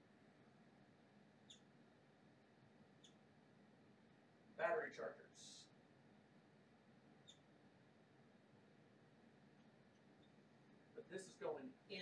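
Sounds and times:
marker squeaking on whiteboard: 7.2 - 7.5.

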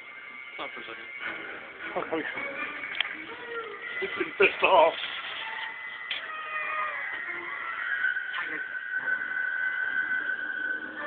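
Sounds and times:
angry cat yowling: 5.6 - 11.0.

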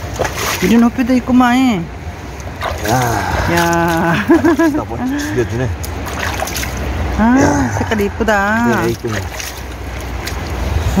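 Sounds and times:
faint water splashes: 0.0 - 11.0
stream water rushing: 0.0 - 11.0.

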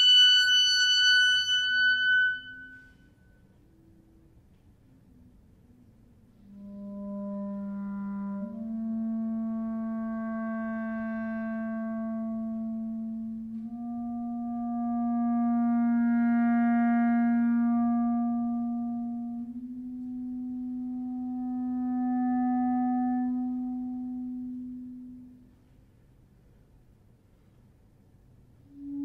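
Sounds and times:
clarinet holding long low notes: 0.0 - 25.8, 28.6 - 29.0.

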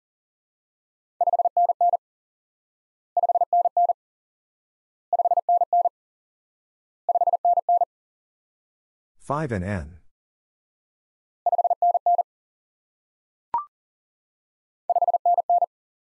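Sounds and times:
morse code beeps: 5.2 - 5.9, 7.1 - 7.9, 11.5 - 12.2, 14.9 - 15.7.

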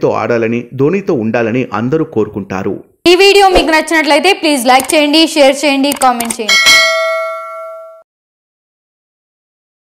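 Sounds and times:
notification bell chime: 6.5 - 8.0.

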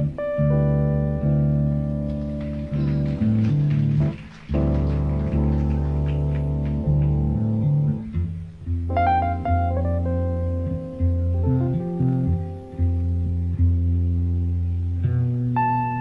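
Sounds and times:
electric bass sustained notes: 0.0 - 16.0.

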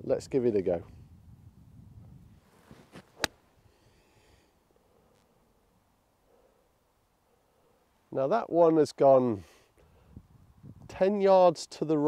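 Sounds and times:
golf club striking ball: 2.9 - 3.4.

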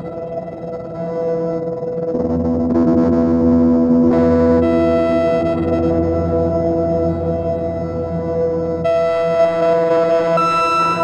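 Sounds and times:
synthesizer drone chord: 2.0 - 11.0.

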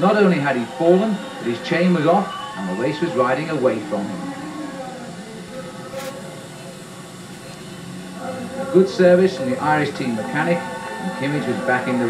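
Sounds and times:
race noise from television: 0.0 - 12.0.

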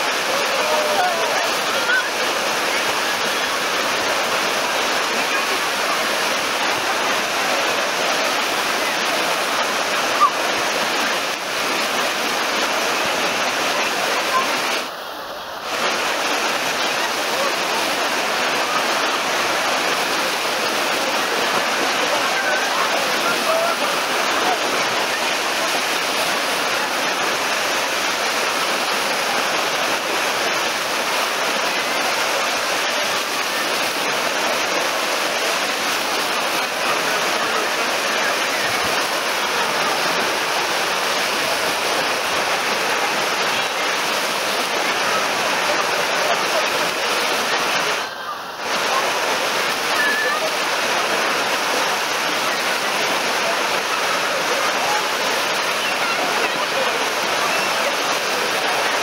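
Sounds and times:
waves breaking in a pool: 0.0 - 59.0.

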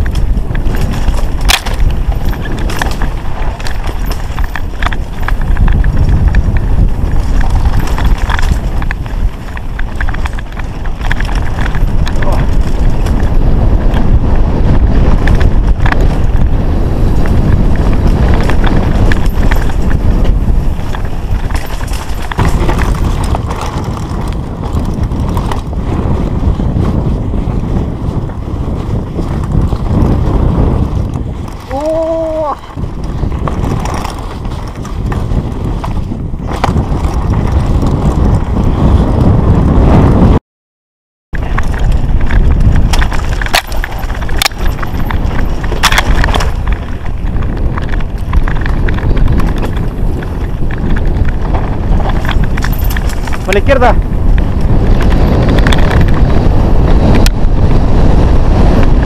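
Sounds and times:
bike rattling on rough ground: 0.0 - 40.4, 41.4 - 59.0
wind buffeting microphone: 0.0 - 40.4, 41.3 - 59.0.

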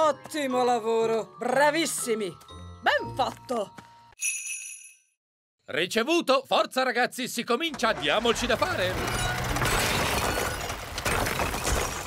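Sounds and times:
masonry crashing down: 7.7 - 12.0
wrecking ball smashing stone wall: 8.0 - 12.0.

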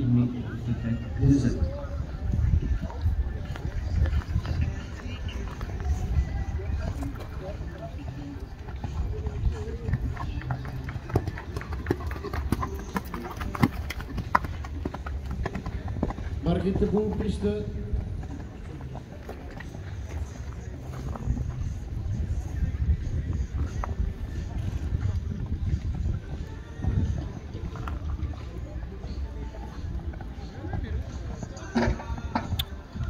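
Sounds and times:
horse hoofbeats on sand: 1.8 - 33.0.

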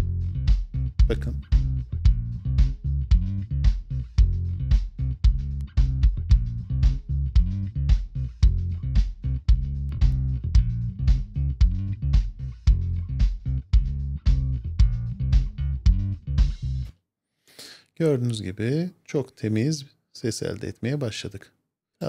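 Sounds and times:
percussion: 0.0 - 16.7
bass guitar: 0.0 - 16.9
kick drum thumping: 3.1 - 16.1.

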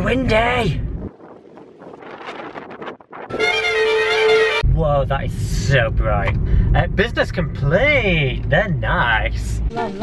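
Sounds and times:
wind buffeting microphone: 0.0 - 3.9.

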